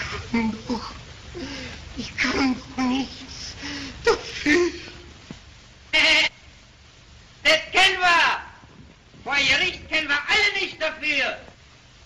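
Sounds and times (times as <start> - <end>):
person crying out: 0.0 - 5.1.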